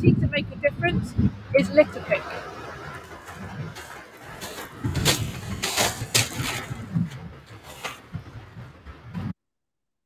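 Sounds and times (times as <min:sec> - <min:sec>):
wind buffeting microphone: 0:00.0 - 0:09.4
short sharp crunches: 0:03.3 - 0:08.1.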